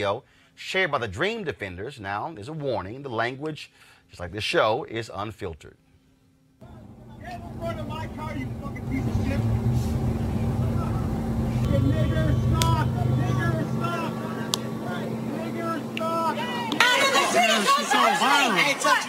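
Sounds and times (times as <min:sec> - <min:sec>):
traffic engine hum and rumble: 0:06.6 - 0:17.1
voices and shouting: 0:06.6 - 0:19.0.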